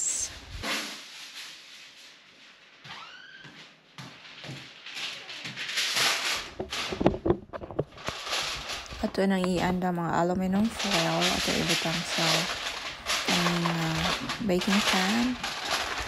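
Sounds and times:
aluminium foil crinkling: 4.2s - 16.0s
paper bag rustling: 4.2s - 16.0s.

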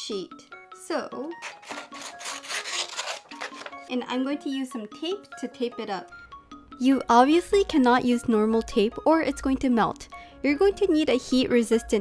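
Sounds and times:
light background music: 0.0s - 12.0s
paper rustling: 1.4s - 3.9s.

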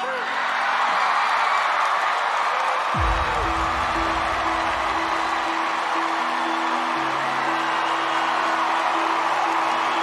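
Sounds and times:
audience applauding and cheering: 0.0s - 10.0s
pulsing background music: 3.0s - 10.0s.

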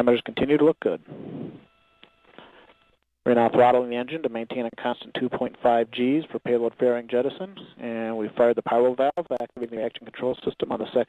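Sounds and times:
faint steady line hum: 0.0s - 11.0s.

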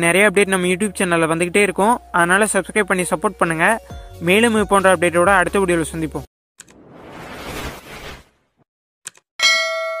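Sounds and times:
whoosh: 6.6s - 8.6s
quick clicks: 9.0s - 9.3s
bright bell-like ding: 9.4s - 10.0s.

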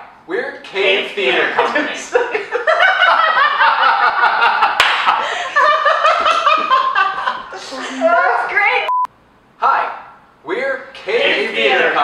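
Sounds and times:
group laughing: 1.2s - 8.6s.

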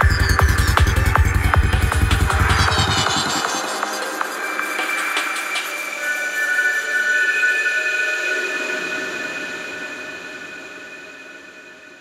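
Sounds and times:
steady high electronic tones: 0.0s - 5.6s
electronic noise wash: 0.2s - 5.9s.

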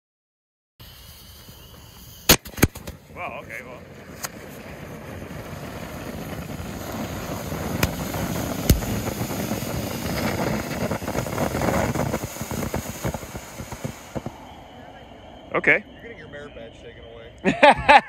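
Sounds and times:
firework fountain rushing hiss: 0.8s - 17.7s
sharp pops: 2.1s - 3.1s, 7.6s - 14.6s.

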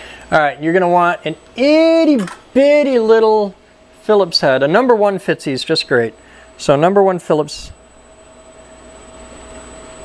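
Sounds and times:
workshop hiss and hum: 0.0s - 10.0s.

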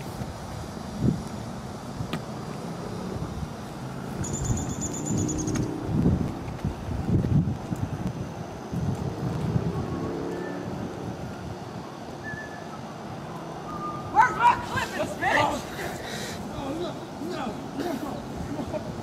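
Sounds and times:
wind buffeting microphone: 0.0s - 19.0s
faint high chirps: 12.2s - 14.4s.

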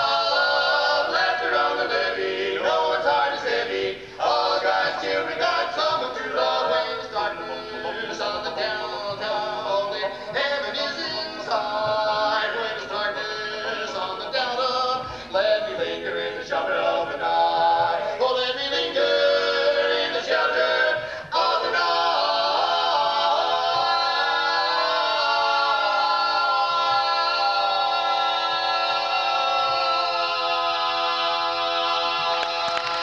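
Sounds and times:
men singing a cappella harmony: 0.0s - 33.0s.

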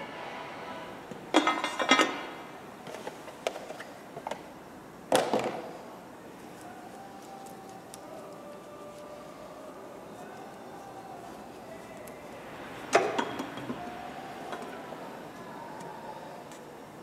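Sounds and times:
rustling and handling noise: 6.4s - 14.8s
soft background music: 6.4s - 17.0s.

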